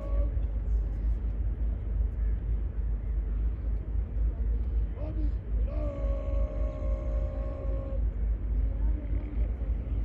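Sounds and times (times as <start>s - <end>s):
constant low rumble: 0.0s - 10.0s.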